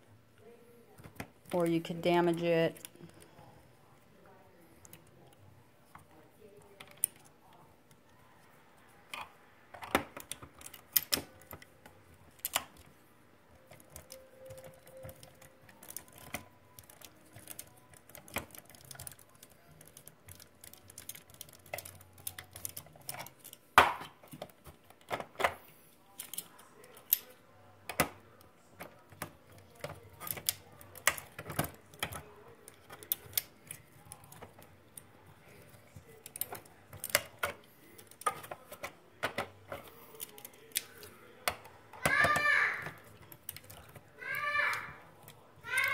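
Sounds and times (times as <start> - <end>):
clicks and clatters of plastic parts: 9.1 - 12.9, 13.6 - 45.9.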